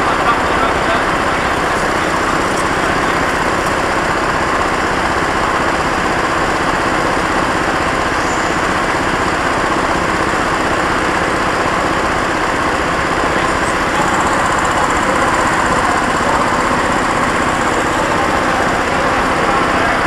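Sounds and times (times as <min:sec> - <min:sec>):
go-kart engine chatter: 0:00.0 - 0:20.0.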